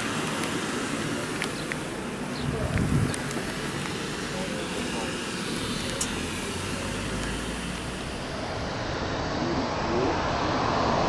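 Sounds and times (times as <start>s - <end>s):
steady low rumble: 0.0s - 11.0s
indistinct background voices: 0.9s - 7.9s.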